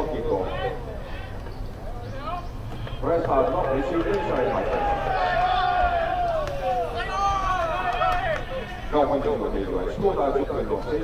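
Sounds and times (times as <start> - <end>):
players shouting long calls: 2.1 - 9.2.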